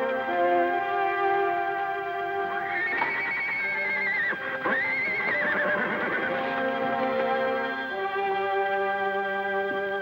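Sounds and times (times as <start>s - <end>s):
background music: 0.0s - 10.0s
horse whinnying: 2.6s - 6.8s.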